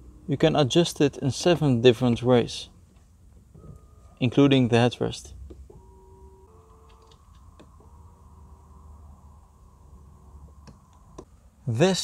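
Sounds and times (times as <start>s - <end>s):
seat motors whining: 5.4s - 11.6s.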